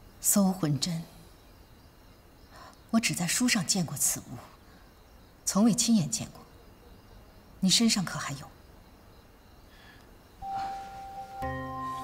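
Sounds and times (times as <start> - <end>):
soft background music: 10.4 - 12.0.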